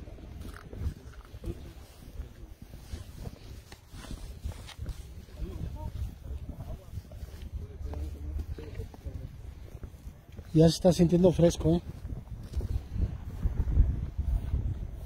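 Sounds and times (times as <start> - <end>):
voices murmuring: 0.0 - 13.0
footsteps through long grass: 0.0 - 15.0.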